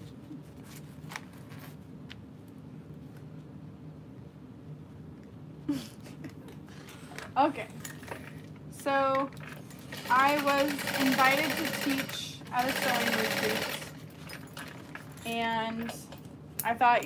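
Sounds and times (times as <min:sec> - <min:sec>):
woman's voice: 0:07.3 - 0:07.8, 0:08.8 - 0:09.4, 0:10.1 - 0:13.8, 0:15.2 - 0:17.0
sewing machine stitching: 0:09.7 - 0:14.0.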